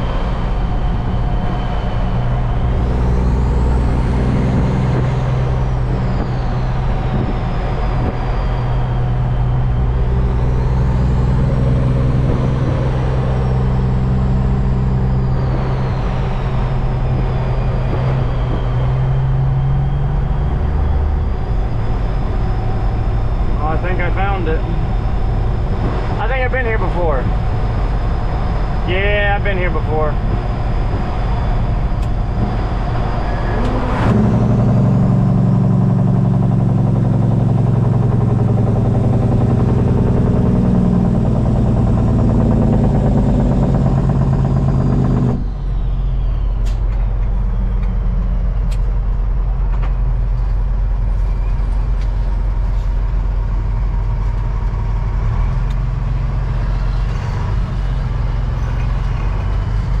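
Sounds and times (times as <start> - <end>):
truck diesel engine drone: 0.0 - 60.0.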